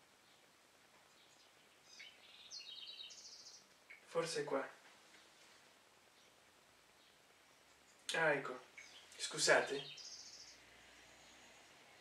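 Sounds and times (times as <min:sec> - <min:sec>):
small bird chirping and trilling: 0:01.1 - 0:04.1, 0:08.7 - 0:11.8.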